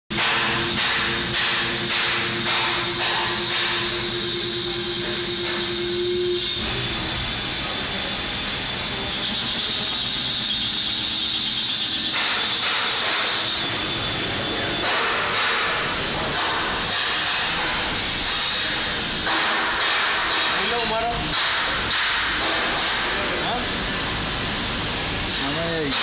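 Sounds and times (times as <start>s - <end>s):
coolant jet hissing: 0.1s - 26.0s
lathe motor hum: 0.6s - 14.5s.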